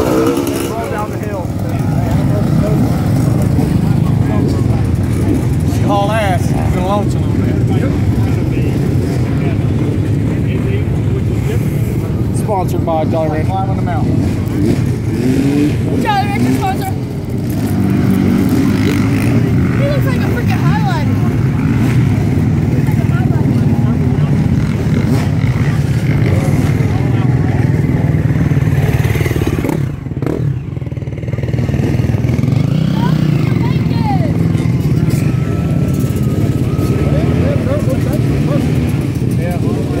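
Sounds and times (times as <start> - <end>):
dirt bike engines droning: 0.0 - 40.0
voices: 0.0 - 40.0.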